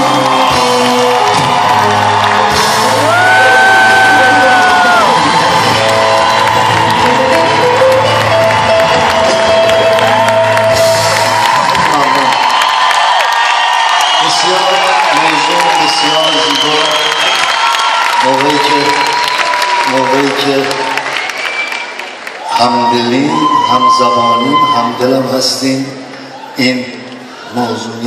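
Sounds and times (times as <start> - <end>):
orchestra playing pop song: 0.0 - 12.6
audience cheering and whooping: 0.0 - 28.0.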